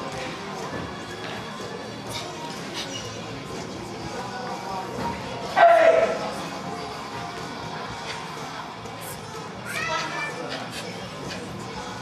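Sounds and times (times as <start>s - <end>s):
child shouting: 9.7s - 10.4s.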